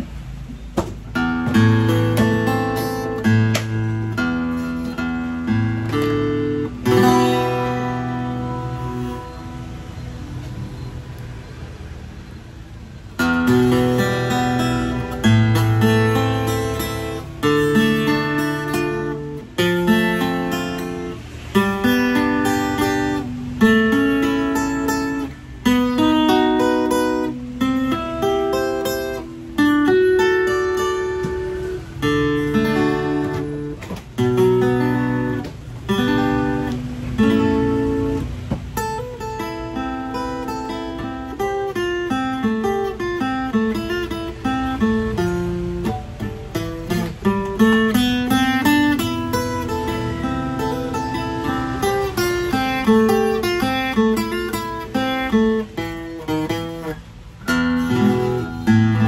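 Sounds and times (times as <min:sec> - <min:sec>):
fingerstyle acoustic guitar: 0:00.0 - 0:59.0.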